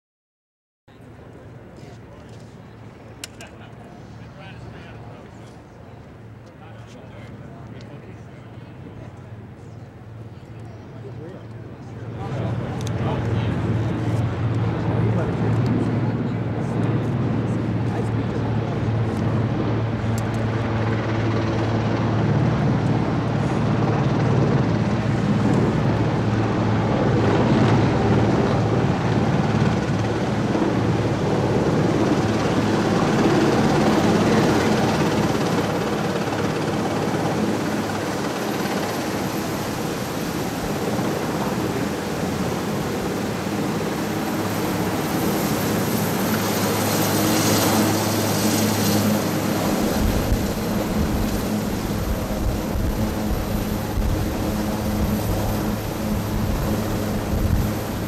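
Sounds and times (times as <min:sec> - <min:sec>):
helicopter hovering: 0:01.0 - 0:58.0.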